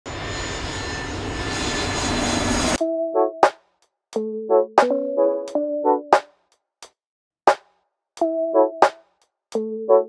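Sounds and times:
airplane engine with high whine: 0:00.0 - 0:02.8.

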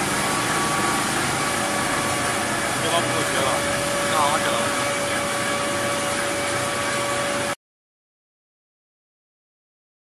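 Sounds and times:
pellet mill running: 0:00.0 - 0:07.6.

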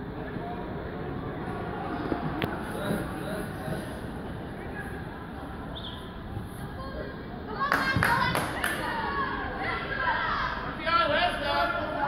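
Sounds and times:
indistinct voices outdoors: 0:00.0 - 0:12.0.

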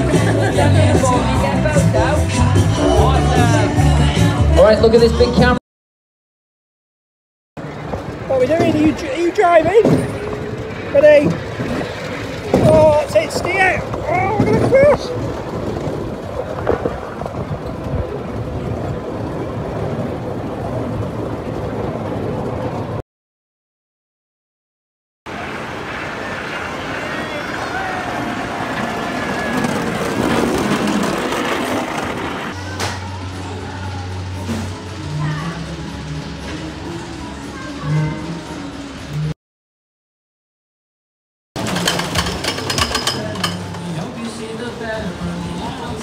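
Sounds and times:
voices: 0:07.6 - 0:15.6, 0:25.4 - 0:30.4, 0:32.5 - 0:39.2
coaster rumbling and rattling: 0:07.6 - 0:23.0, 0:25.3 - 0:39.3, 0:41.6 - 0:46.0
wind on microphone: 0:11.5 - 0:23.0.

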